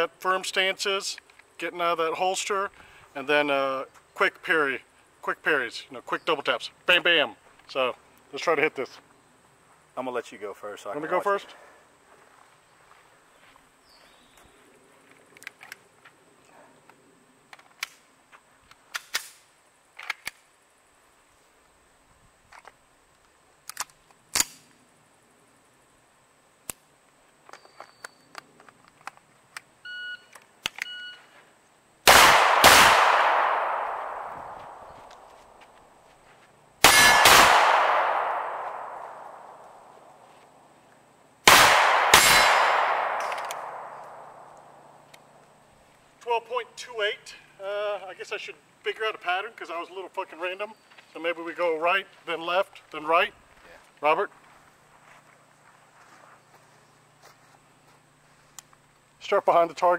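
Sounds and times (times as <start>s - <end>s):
pistol shots: 32.1s - 35.0s, 36.8s - 39.7s, 41.4s - 44.8s.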